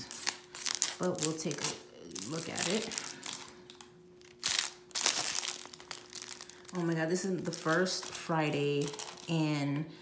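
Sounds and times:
cellophane wrapping crinkling: 0:00.0 - 0:09.6.

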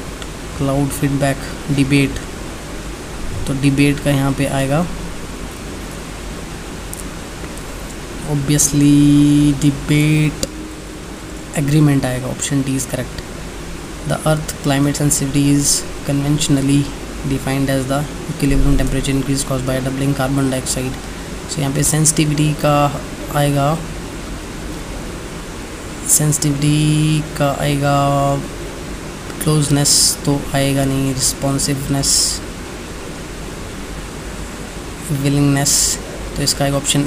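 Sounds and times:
steady background hiss: 0:00.0 - 0:37.0.

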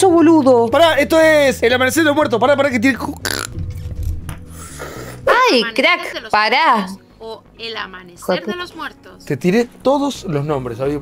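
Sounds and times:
low bass line background music: 0:00.0 - 0:11.0
man making burp-like noise: 0:03.0 - 0:03.6.

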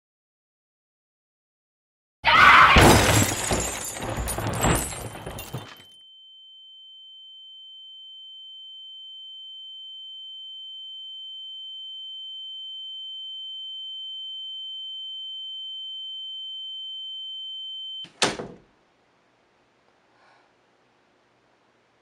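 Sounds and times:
high-pitched electronic ringing tone: 0:06.0 - 0:18.1.

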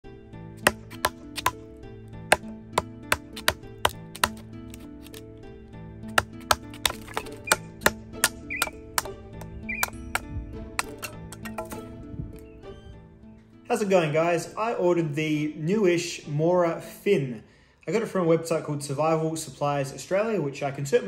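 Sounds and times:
background music: 0:00.0 - 0:21.0
mallet knocking on knife: 0:00.6 - 0:01.6, 0:03.1 - 0:04.4, 0:06.2 - 0:11.9.

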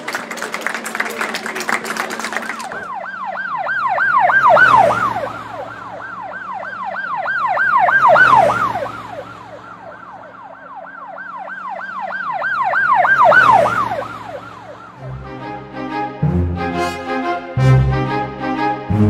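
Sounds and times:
emergency siren yelping: 0:02.6 - 0:16.2.

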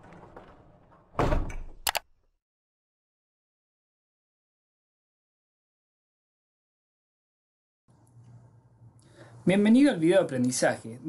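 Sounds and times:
quick sharp clicks: 0:01.8 - 0:02.1.

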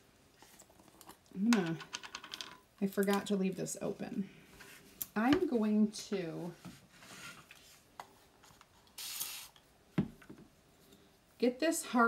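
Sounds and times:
spray bottle spritz: 0:09.0 - 0:09.6.

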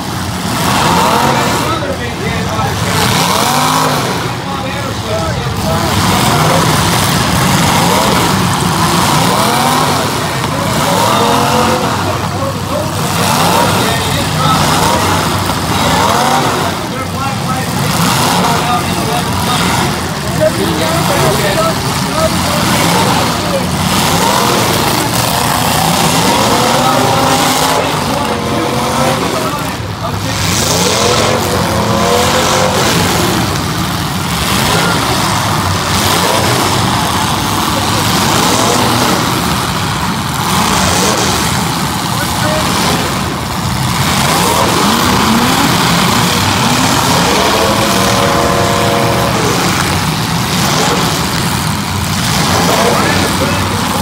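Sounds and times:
car engines revving: 0:00.0 - 0:54.0.

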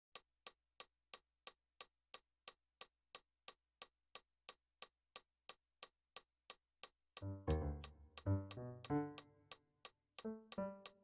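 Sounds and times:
piano: 0:07.2 - 0:09.5, 0:10.2 - 0:11.0
metronome clicking: 0:07.2 - 0:11.0.

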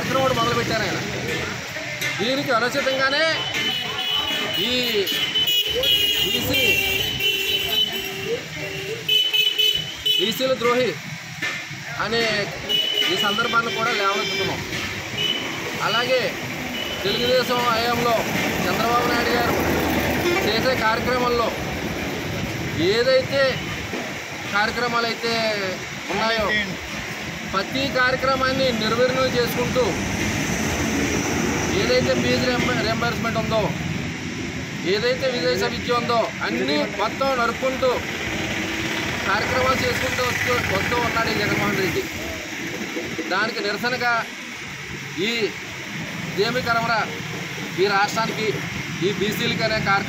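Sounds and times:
traffic noise: 0:00.0 - 0:50.0
vehicle horns honking: 0:03.0 - 0:10.6, 0:12.6 - 0:15.8, 0:16.7 - 0:17.6, 0:20.2 - 0:20.9
steady rushing noise: 0:10.4 - 0:50.0.

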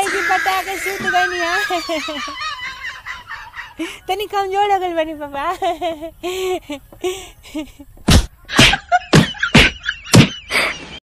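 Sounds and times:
person wailing: 0:00.0 - 0:02.8
person breathing: 0:06.2 - 0:07.6.

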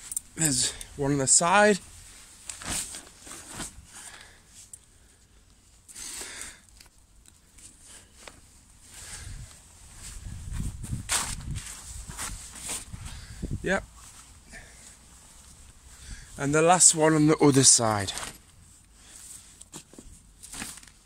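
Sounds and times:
tent fabric rustling: 0:00.0 - 0:06.4, 0:07.4 - 0:21.0.

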